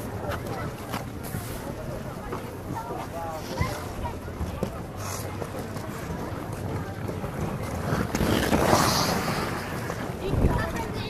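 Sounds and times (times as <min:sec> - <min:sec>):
skates scraping on ice: 0:00.2 - 0:11.0.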